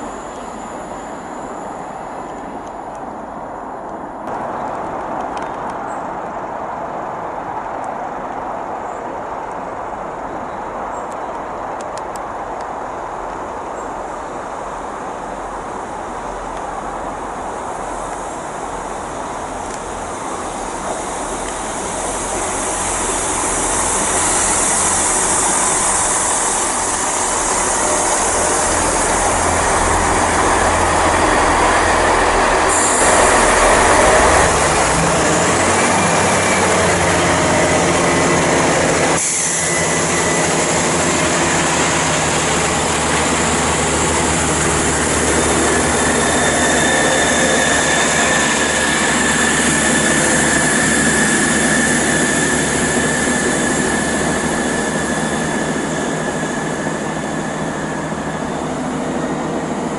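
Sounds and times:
diesel train running: 0.0s - 7.9s, 9.6s - 59.9s
thin high squeal: 22.8s - 42.7s, 44.9s - 58.6s.

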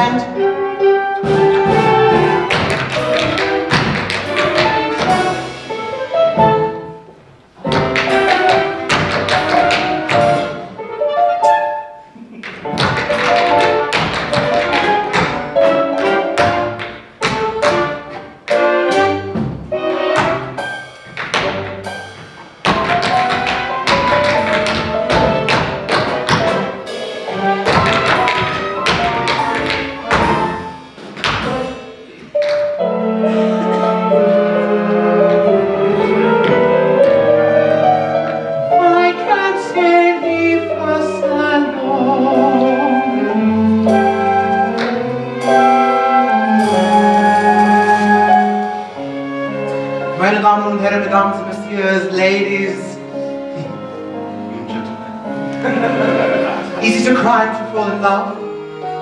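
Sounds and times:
live theatre band playing: 0.0s - 59.0s.

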